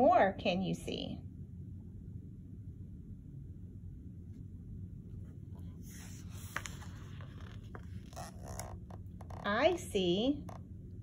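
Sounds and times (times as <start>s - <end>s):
book page turning: 5.6s - 9.6s.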